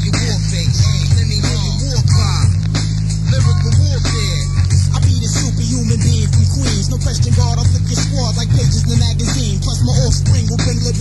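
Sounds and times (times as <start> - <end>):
heavy bass beat: 0.0 - 11.0
person rapping: 0.0 - 11.0.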